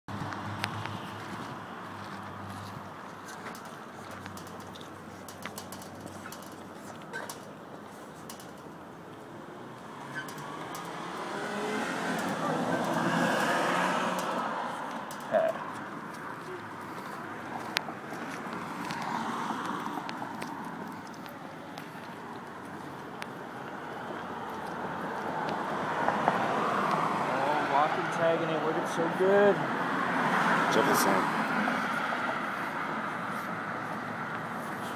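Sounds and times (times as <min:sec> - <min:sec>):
traffic hum: 0:00.1 - 0:34.9
vehicles passing: 0:00.1 - 0:34.9.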